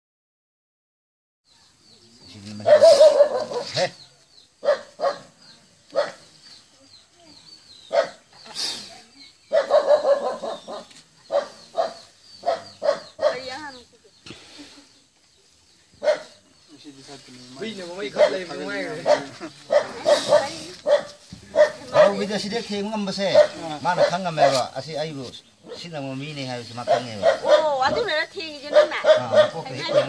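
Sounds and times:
animal barking: 0:02.5 - 0:04.0, 0:04.6 - 0:06.3, 0:07.8 - 0:08.3, 0:09.5 - 0:13.6, 0:16.0 - 0:16.4, 0:18.0 - 0:22.4, 0:23.2 - 0:24.7, 0:26.8 - 0:28.0, 0:28.6 - 0:30.0
people's voices: 0:16.0 - 0:30.0.

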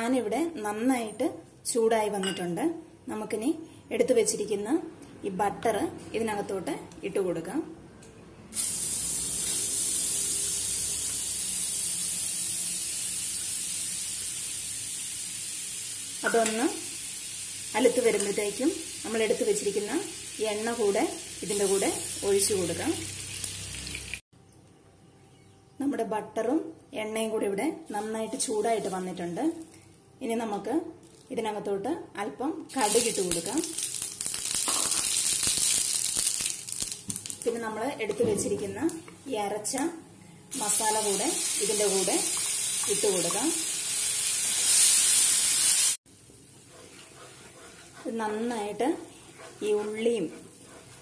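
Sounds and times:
butter sizzling in a frying pan: 0:08.6 - 0:24.2, 0:32.7 - 0:37.3, 0:40.6 - 0:46.0.

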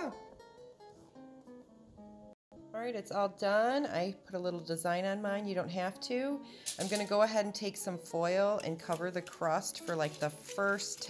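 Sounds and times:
acoustic guitar music: 0:00.0 - 0:02.8.

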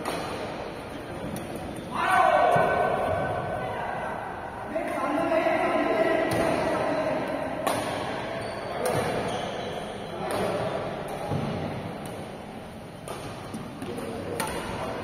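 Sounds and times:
rackets hitting shuttlecock: 0:00.0 - 0:01.8, 0:06.3 - 0:06.8, 0:07.6 - 0:09.3, 0:10.2 - 0:15.0.

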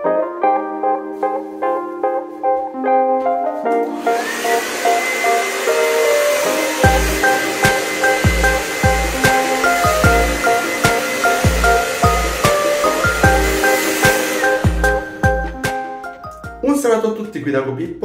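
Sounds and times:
piano music with kick drum: 0:00.0 - 0:18.0
hair dryer running: 0:03.8 - 0:16.0.

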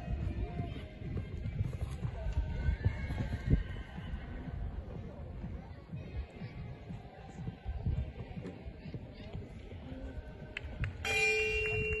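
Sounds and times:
horse hooves cantering on sand: 0:00.0 - 0:10.9
bell-like chime ringing: 0:11.0 - 0:12.0.

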